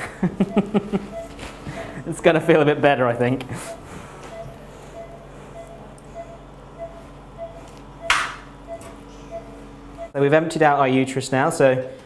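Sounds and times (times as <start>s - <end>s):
patient monitor beeping: 0.0s - 10.2s
low steady hum: 0.0s - 12.0s.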